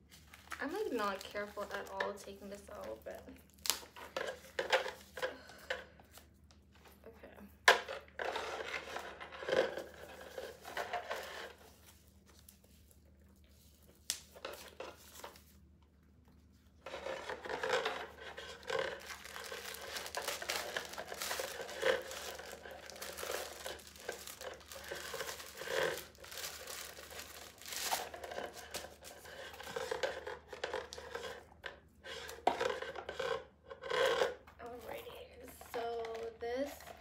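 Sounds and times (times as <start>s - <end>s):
paper crinkling and rustling: 0.0s - 5.4s, 8.1s - 37.0s.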